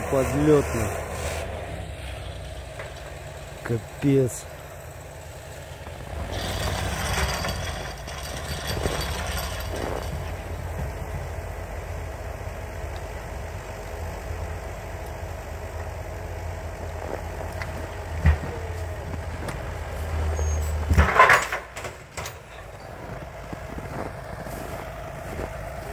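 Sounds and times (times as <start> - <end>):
vehicle engine revving: 5.7 - 21.2, 22.8 - 25.9.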